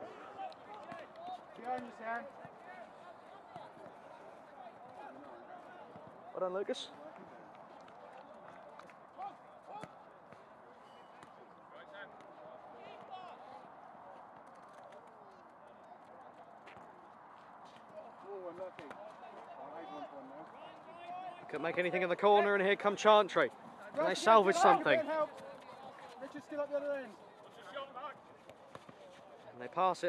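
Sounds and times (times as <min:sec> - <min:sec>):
distant shouts of footballers: 0:18.0 - 0:21.6.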